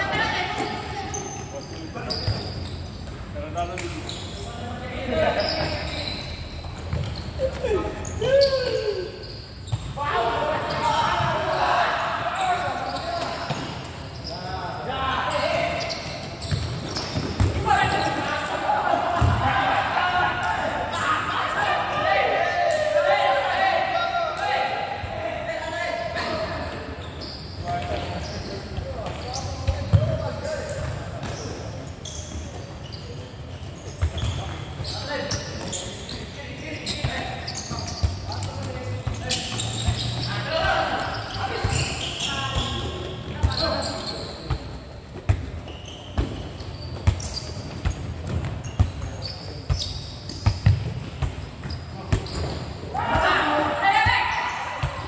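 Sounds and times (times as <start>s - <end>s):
players shouting: 52.9s - 55.0s.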